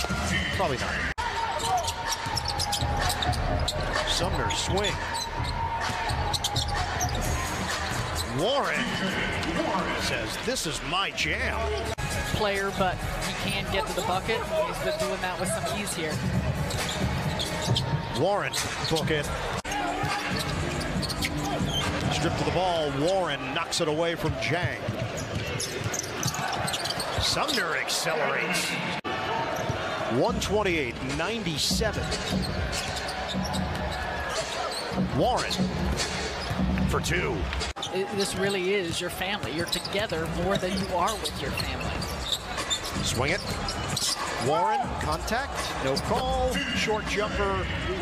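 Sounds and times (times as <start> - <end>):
arena crowd noise: 0.0 - 48.0.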